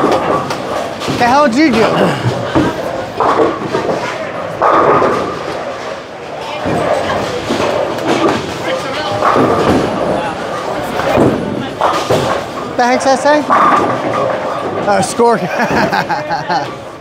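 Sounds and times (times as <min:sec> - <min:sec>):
bowling alley background noise: 0:00.0 - 0:17.0.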